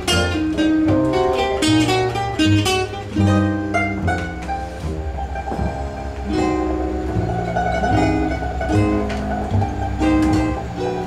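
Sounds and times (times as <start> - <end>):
acoustic guitar playing: 0.0 - 11.0
banjo playing: 0.0 - 11.0.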